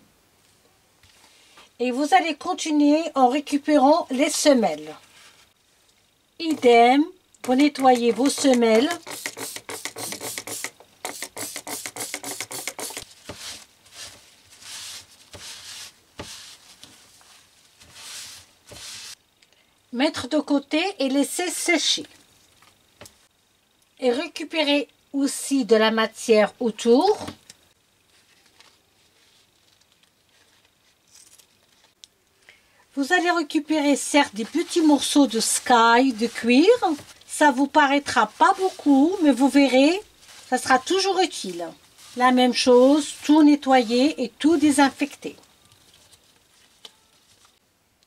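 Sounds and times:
cloth wiping insoles: 0:08.8 - 0:19.2, 0:34.2 - 0:37.2, 0:38.0 - 0:44.1
trigger spray bottle squirts: 0:08.9 - 0:13.0.

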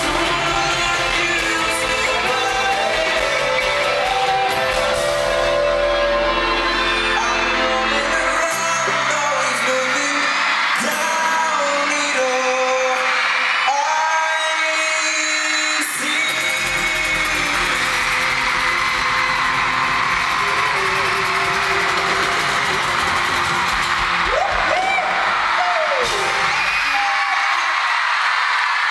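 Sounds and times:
crowd screaming and cheering: 0:00.0 - 0:28.9
live pop band with singing: 0:00.0 - 0:28.9.

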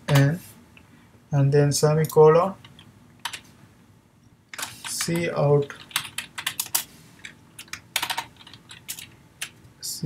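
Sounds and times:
computer keyboard typing: 0:02.6 - 0:03.5, 0:04.5 - 0:09.6.

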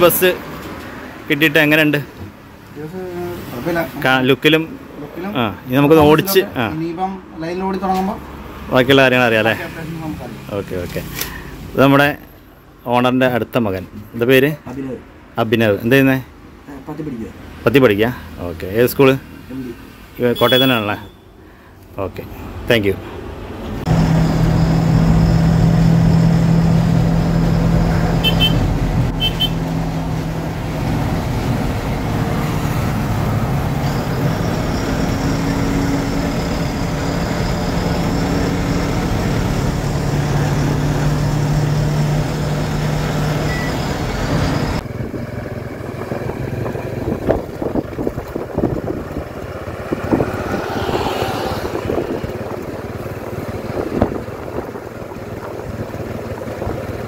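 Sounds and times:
outdoor road sound: 0:00.0 - 0:57.0
diesel engine drone: 0:22.4 - 0:57.0.

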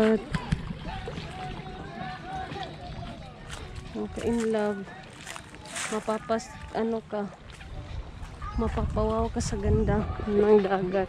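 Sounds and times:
people talking: 0:00.0 - 0:07.4, 0:08.4 - 0:11.0.

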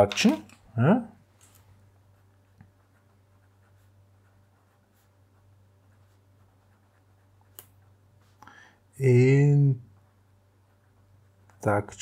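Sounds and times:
steady low hum: 0:00.0 - 0:12.0
pencil scratching on paper: 0:02.0 - 0:08.4, 0:09.9 - 0:12.0.

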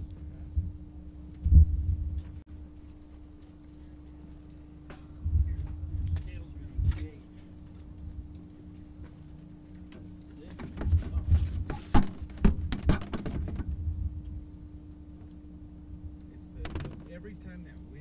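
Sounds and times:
steady low hum: 0:00.0 - 0:18.0
knocks and clatter: 0:10.4 - 0:13.7, 0:16.6 - 0:17.1.

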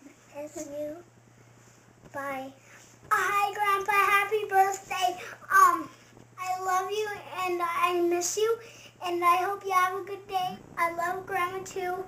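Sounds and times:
boy talking sing-song: 0:02.1 - 0:12.0.

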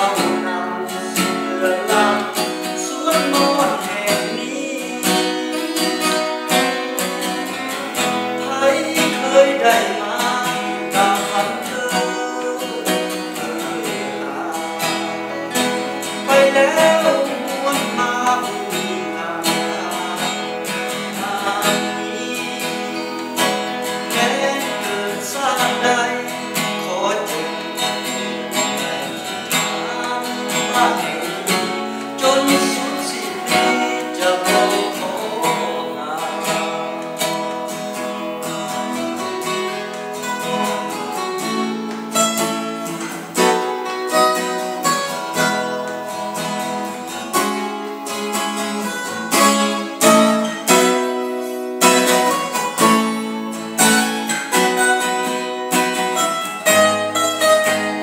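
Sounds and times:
acoustic guitars strummed: 0:00.0 - 0:58.0
man singing: 0:00.0 - 0:58.0.

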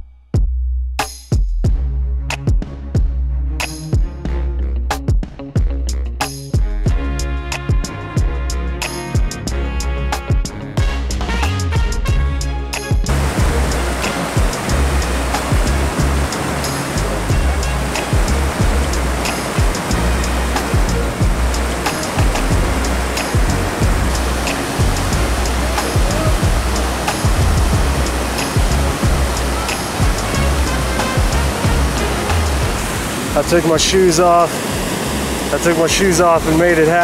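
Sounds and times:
wind rumble on microphone: 0:13.1 - 0:33.5
water rushing over rocks: 0:13.1 - 0:37.0.

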